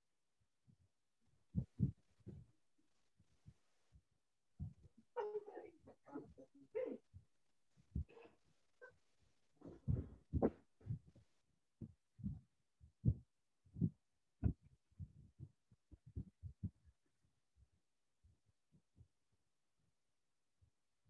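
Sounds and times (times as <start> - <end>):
muffled low thumps: 1.6 - 2.4, 9.6 - 11.2, 11.8 - 12.4, 13.0 - 13.2, 13.8 - 16.8.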